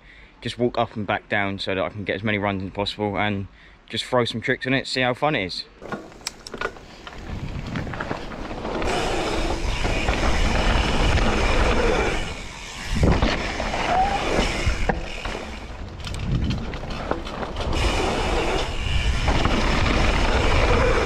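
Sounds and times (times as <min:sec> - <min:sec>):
bike rattling: 0:05.8 - 0:21.0
tyres rumbling on dirt: 0:05.8 - 0:21.0.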